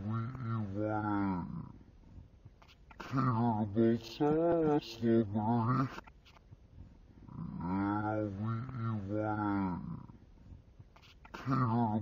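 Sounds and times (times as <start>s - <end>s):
slowed low drawn-out voice: 0.0s - 1.8s, 3.0s - 6.0s, 7.3s - 10.2s, 11.4s - 12.0s.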